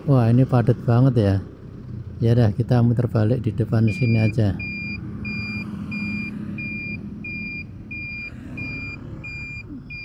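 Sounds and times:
engine rumble: 0.0s - 10.0s
surrounding traffic: 0.0s - 10.0s
turn signal beeping: 3.7s - 10.0s.

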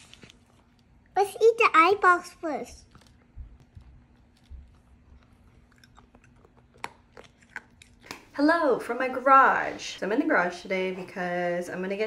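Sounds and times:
child chewing and crunching food: 0.0s - 1.6s, 2.5s - 8.3s.

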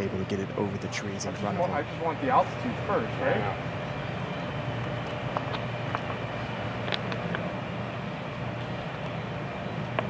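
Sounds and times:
faint hum: 0.0s - 10.0s
low outdoor rumble: 0.0s - 10.0s.

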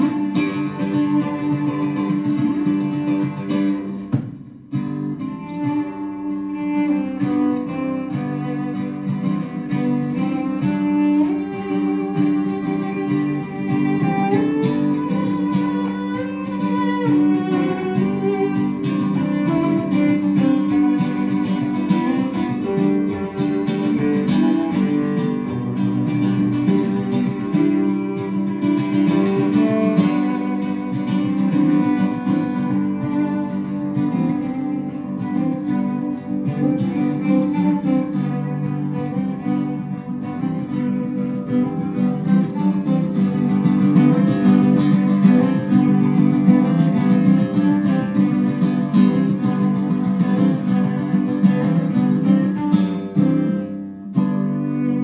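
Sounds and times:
classical guitar: 0.0s - 55.0s.

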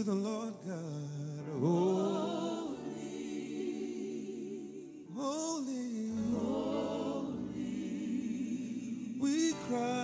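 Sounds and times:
group singing gospel song: 1.6s - 5.2s, 6.1s - 10.0s.

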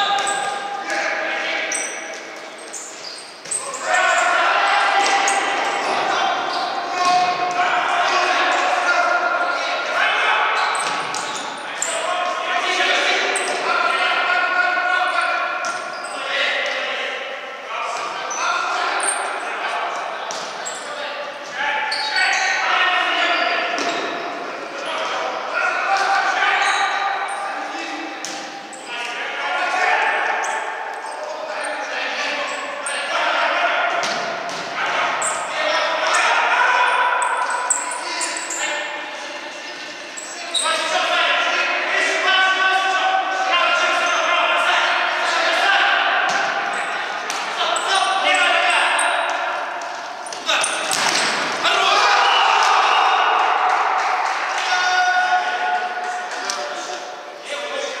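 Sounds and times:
players shouting in a hall: 0.0s - 58.0s.

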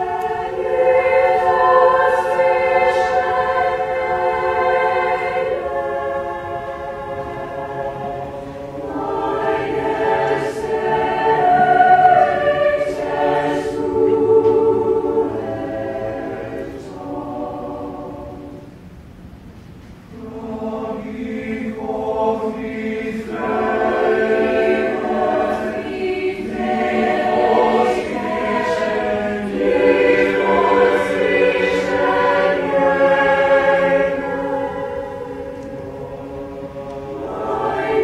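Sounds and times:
choir singing a cappella: 0.0s - 18.9s, 20.1s - 38.0s.

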